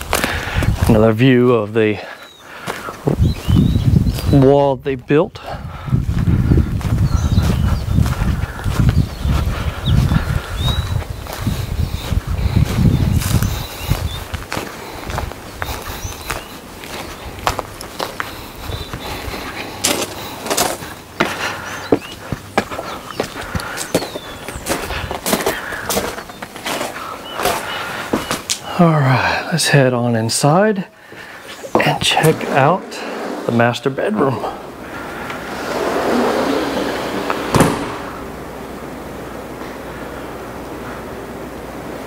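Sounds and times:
wind buffeting microphone: 0:00.0 - 0:01.2, 0:02.7 - 0:19.6
footsteps crunching on gravel: 0:00.0 - 0:04.4, 0:06.0 - 0:28.7, 0:30.4 - 0:36.0
bird chirps: 0:02.1 - 0:04.6, 0:08.8 - 0:12.2, 0:21.6 - 0:24.7.

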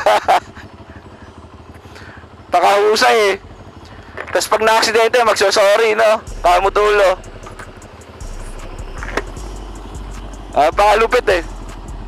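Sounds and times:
motorcycle engine idling: 0:00.0 - 0:12.0
man's voice: 0:04.3 - 0:07.4, 0:10.4 - 0:11.7.

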